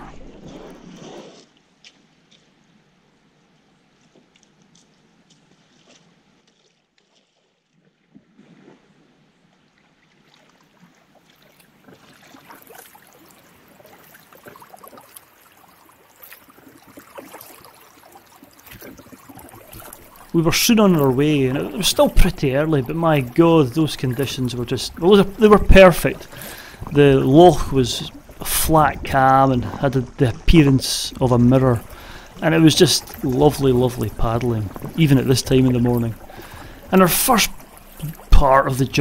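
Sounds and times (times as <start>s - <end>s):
paddle strokes splashing: 0.0s - 2.6s, 4.0s - 39.0s
water trickles and drips: 9.5s - 39.0s.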